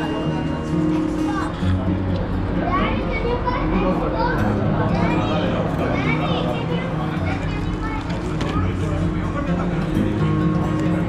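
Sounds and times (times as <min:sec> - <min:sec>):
chatter of voices: 0:00.0 - 0:11.0
children's voices: 0:00.3 - 0:09.7.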